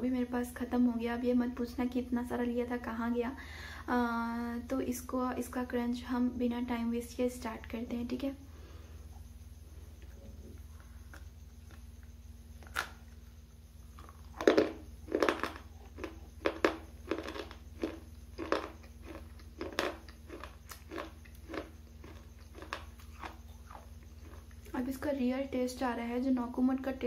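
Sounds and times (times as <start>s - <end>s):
crisp chewing crunches: 12.6s - 13.2s, 13.9s - 24.8s.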